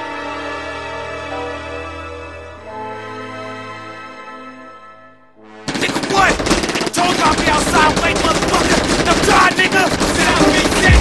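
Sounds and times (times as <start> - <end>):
music track: 0.0 - 11.0
rapid gunfire: 5.6 - 11.0
people shouting: 5.8 - 11.0.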